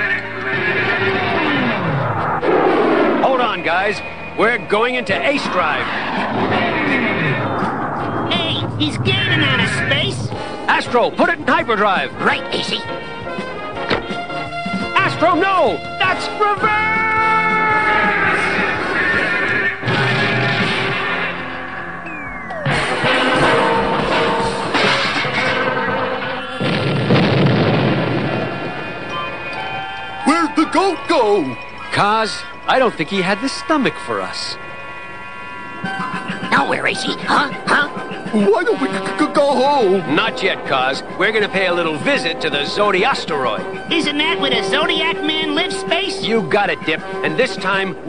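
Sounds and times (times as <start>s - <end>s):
background music: 0.0s - 48.0s
cartoon crash and explosion: 22.5s - 29.1s.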